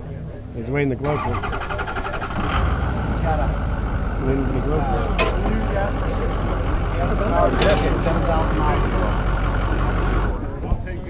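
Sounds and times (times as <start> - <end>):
diesel engine idling: 1.0 - 10.8.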